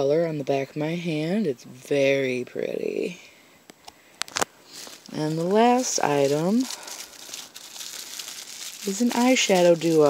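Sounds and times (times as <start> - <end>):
plastic bag crinkling: 4.1 - 10.0
tissue paper rustling: 4.3 - 10.0.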